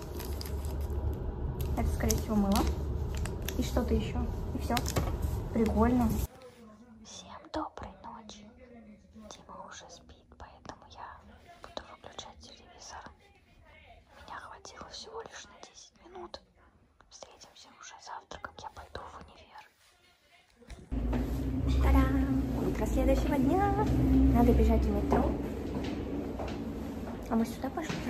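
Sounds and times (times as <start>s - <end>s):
person whispering: 5.5s - 8.6s, 9.2s - 13.4s, 14.1s - 19.9s.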